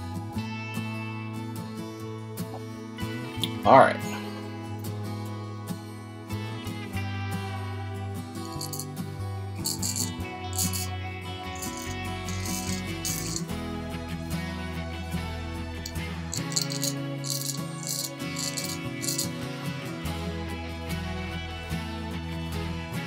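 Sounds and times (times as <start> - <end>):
background guitar music: 0.0 - 23.0.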